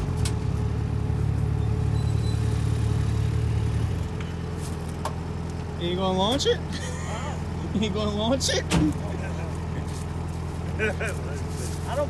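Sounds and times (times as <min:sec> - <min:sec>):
vehicle engine idling: 0:00.0 - 0:12.0.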